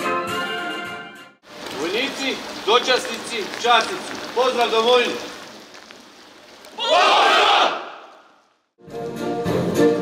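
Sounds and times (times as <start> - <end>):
soldiers shouting in unison: 6.8 - 8.2.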